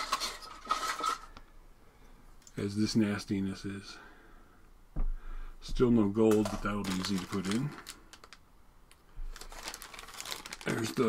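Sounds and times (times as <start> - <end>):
plastic bag crinkling: 6.2 - 11.0.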